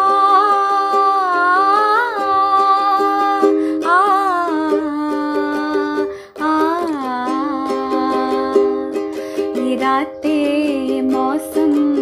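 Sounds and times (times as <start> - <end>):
ukulele strumming: 0.0 - 12.0.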